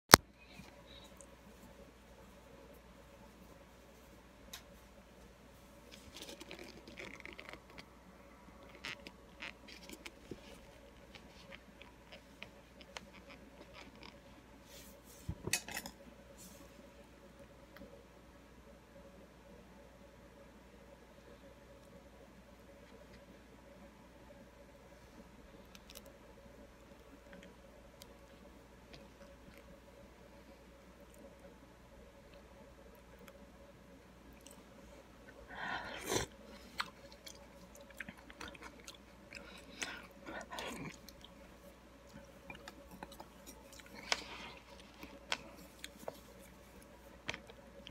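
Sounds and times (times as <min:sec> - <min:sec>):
close-up chewing: 0:05.9 - 0:14.4, 0:34.3 - 0:47.9.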